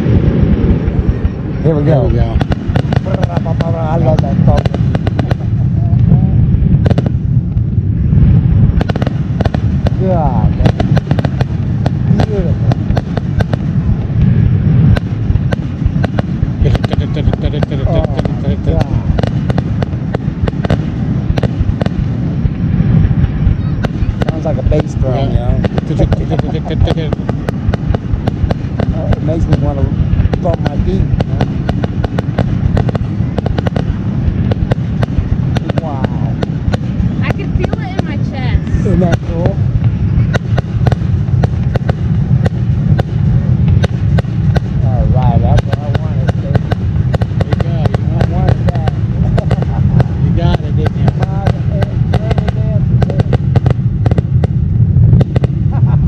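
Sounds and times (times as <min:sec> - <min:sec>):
fireworks bangs and crackles: 0:00.0 - 0:56.0
people's voices: 0:00.8 - 0:06.6, 0:09.9 - 0:14.2, 0:16.6 - 0:20.2, 0:23.1 - 0:34.1, 0:35.6 - 0:40.6, 0:44.6 - 0:53.4.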